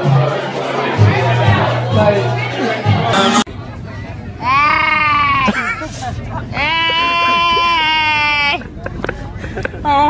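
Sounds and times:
woman laughing: 0:05.4 - 0:10.0.

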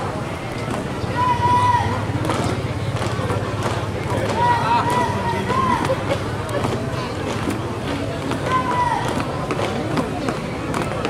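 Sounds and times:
crowd chatter: 0:00.0 - 0:11.0
marching footsteps on asphalt: 0:00.0 - 0:11.0.

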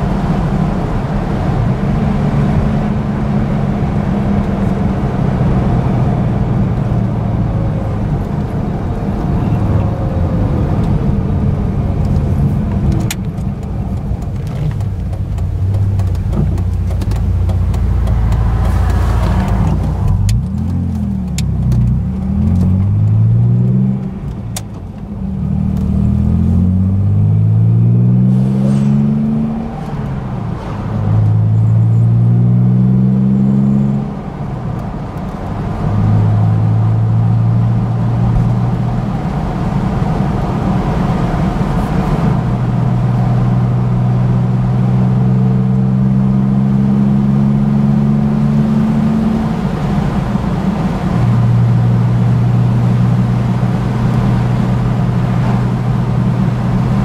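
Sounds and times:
car engine revving from inside: 0:16.0 - 0:24.4, 0:25.2 - 0:34.2, 0:40.5 - 0:57.0.

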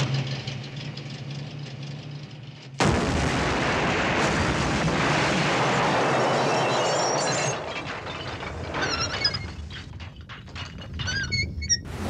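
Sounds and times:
bomb explosion blast: 0:02.8 - 0:07.7.

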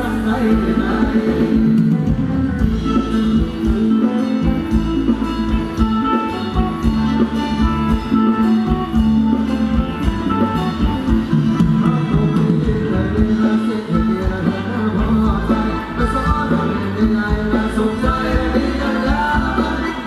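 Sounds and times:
person singing: 0:00.0 - 0:04.5, 0:11.5 - 0:20.0
live band playing dance song: 0:00.0 - 0:20.0.

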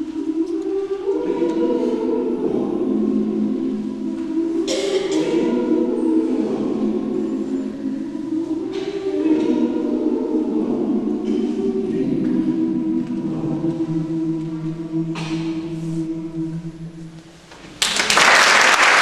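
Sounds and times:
mixed choir singing a cappella: 0:00.0 - 0:17.4.

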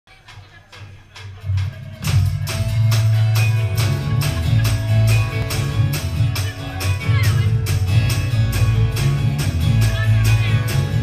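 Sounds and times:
live band playing: 0:01.1 - 0:11.0
low bass line: 0:01.5 - 0:11.0.

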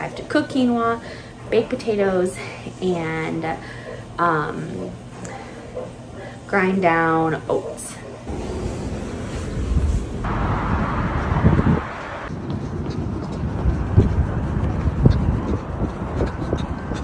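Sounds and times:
low city rumble: 0:00.0 - 0:17.0
wind on microphone: 0:09.2 - 0:17.0.

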